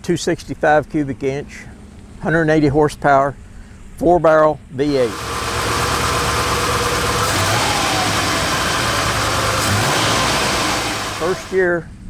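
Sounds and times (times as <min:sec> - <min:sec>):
car engine idling: 0:00.8 - 0:04.0, 0:04.9 - 0:11.7.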